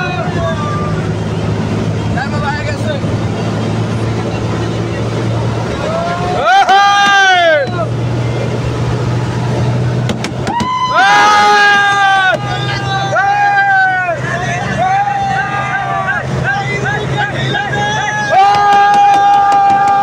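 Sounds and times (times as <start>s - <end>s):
vehicle engine drone: 0.0s - 20.0s.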